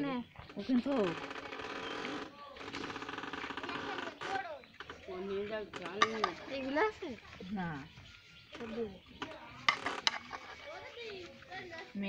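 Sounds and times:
rapid mechanical rattle: 0:00.5 - 0:06.9.

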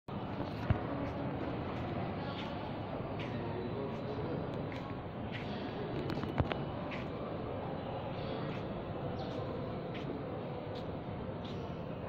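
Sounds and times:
large hall background noise: 0:00.1 - 0:12.0.

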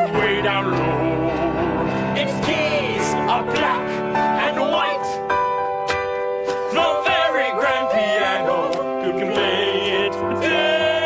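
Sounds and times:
men singing show tune: 0:00.0 - 0:05.2, 0:06.5 - 0:11.0
piano accompaniment: 0:00.0 - 0:11.0.

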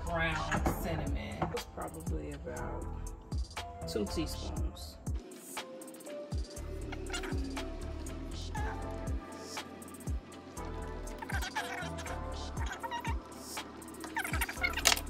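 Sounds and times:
background music with kick drum: 0:00.0 - 0:15.0.

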